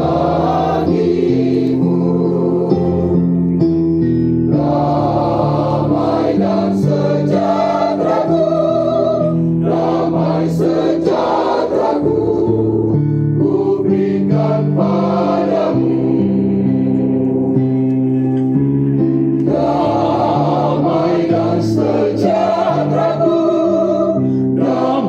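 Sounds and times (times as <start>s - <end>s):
mixed choir singing in harmony: 0.0s - 3.6s, 4.5s - 17.7s, 19.4s - 25.0s
electronic keyboard: 0.0s - 25.0s.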